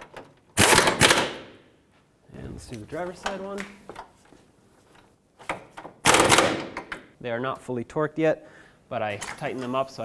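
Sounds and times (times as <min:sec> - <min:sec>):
pneumatic impact wrench hammering: 0:00.6 - 0:01.5, 0:06.0 - 0:06.9.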